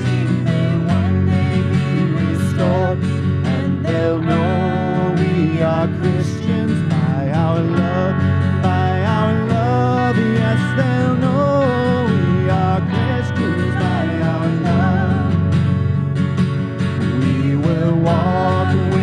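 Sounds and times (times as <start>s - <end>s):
woman and man singing: 0.0s - 15.4s, 17.1s - 19.0s
strummed acoustic guitar: 0.0s - 19.0s.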